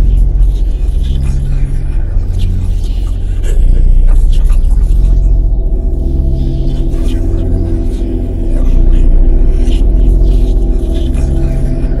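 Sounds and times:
loud low rumble: 0.0 - 12.0.

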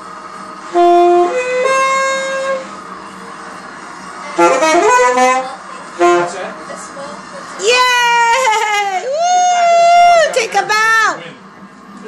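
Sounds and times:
saxophone note: 0.7 - 2.7, 4.3 - 6.5.

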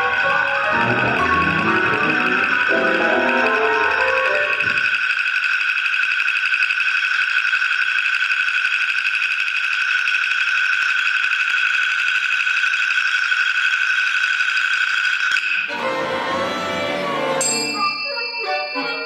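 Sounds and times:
ensemble holding high chord: 0.0 - 4.9, 15.7 - 19.0.

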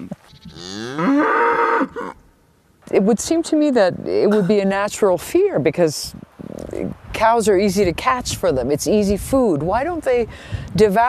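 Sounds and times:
cow mooing: 0.4 - 2.2.

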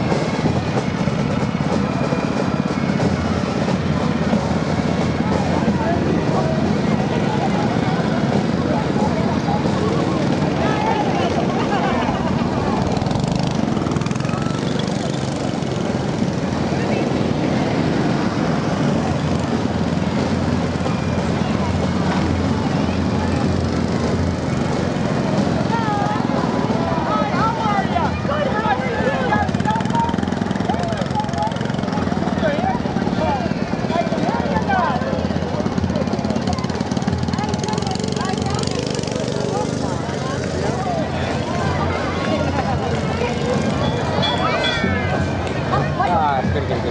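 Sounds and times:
crowd chatter: 0.0 - 46.9
people's voices: 0.0 - 46.9.

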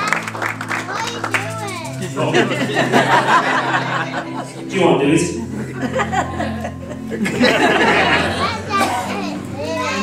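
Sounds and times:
people laughing: 2.0 - 4.7, 5.4 - 9.2.

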